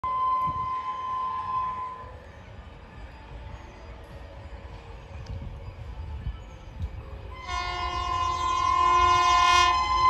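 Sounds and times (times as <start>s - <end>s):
train horn: 0.0s - 2.1s, 7.4s - 10.0s
low train rumble: 0.0s - 10.0s.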